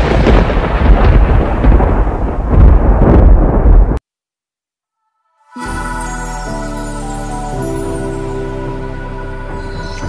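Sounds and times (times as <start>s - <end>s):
deep thunder-like rumbling: 0.0s - 4.0s.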